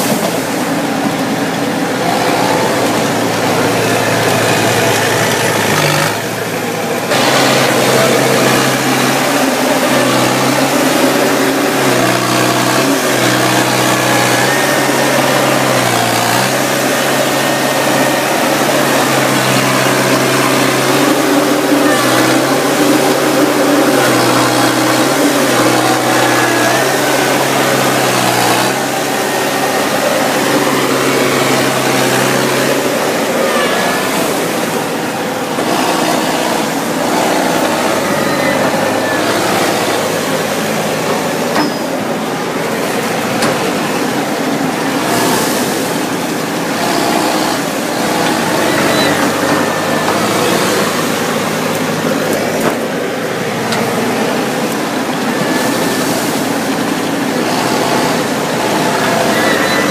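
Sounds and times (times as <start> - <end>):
harvester engine running: 0.0 - 59.9.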